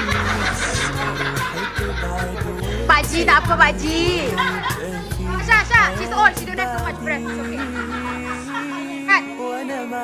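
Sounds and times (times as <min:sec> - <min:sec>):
background music with low notes: 0:00.0 - 0:10.0
people shouting and laughing: 0:00.0 - 0:10.0.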